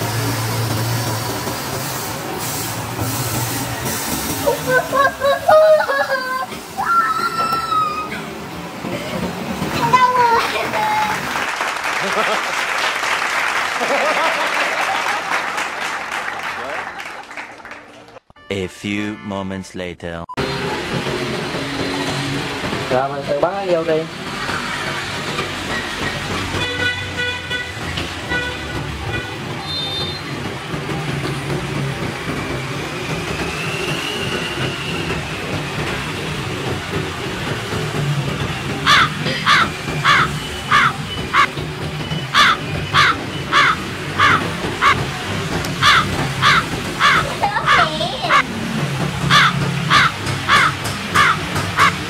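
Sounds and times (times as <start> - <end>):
crow caws sound effect: 38.9 - 41.5, 42.3 - 45.0, 45.8 - 48.5, 49.3 - 52.0.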